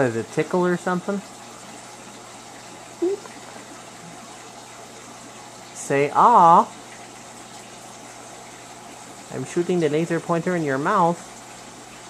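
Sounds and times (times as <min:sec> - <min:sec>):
water rushing in a tank: 0:00.0 - 0:12.0.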